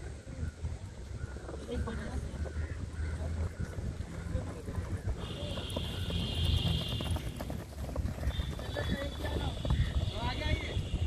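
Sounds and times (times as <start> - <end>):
runners' footfalls on dirt: 2.6 - 11.0.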